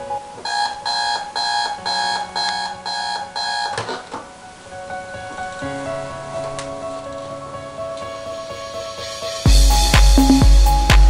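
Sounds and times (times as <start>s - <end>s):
alarm clock beeping: 0.4s - 4.0s.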